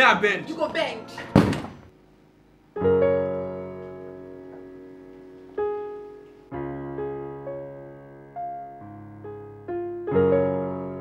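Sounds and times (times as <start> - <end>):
heavy thump: 1.3 - 1.9
sustained piano chord: 2.7 - 11.0.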